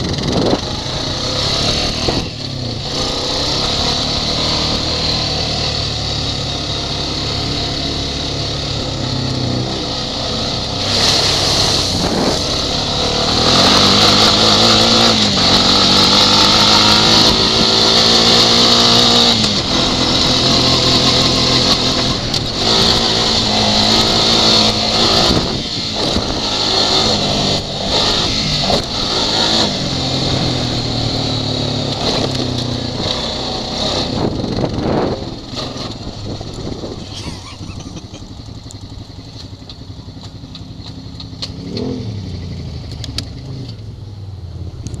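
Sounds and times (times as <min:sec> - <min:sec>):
atv engine running: 0:00.0 - 0:45.0.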